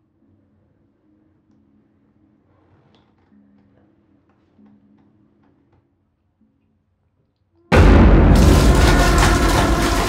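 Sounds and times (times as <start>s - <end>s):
low hum: 7.7s - 10.0s.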